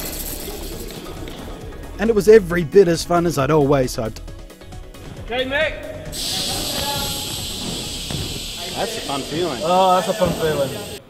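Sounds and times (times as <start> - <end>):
compressed air hissing: 5.9 - 11.0.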